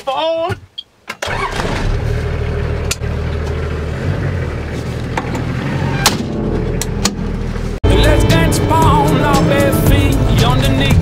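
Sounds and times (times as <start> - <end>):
knocks and rattles inside bus: 0.3 - 3.6, 4.6 - 7.7
bus engine humming: 1.3 - 11.0.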